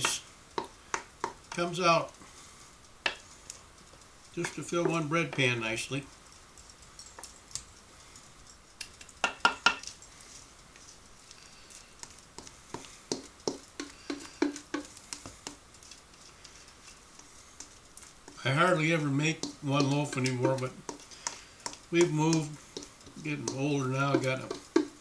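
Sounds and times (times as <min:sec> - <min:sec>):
metal clinks: 0:03.1 - 0:10.2
quick taps: 0:12.4 - 0:15.6
utensil scraping metal bowl: 0:16.1 - 0:25.0.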